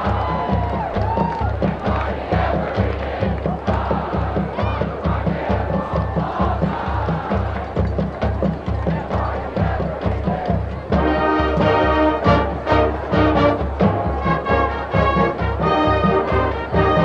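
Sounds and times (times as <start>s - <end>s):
bass drum beat: 0.0s - 17.0s
crowd cheering and yelling: 0.0s - 17.0s
marching band playing rock tune: 0.0s - 17.0s.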